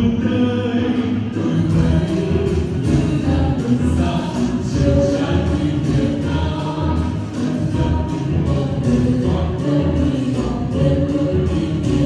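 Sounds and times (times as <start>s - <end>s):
instrumental accompaniment with bass: 0.0s - 12.0s
voices singing in chorus: 0.0s - 12.0s.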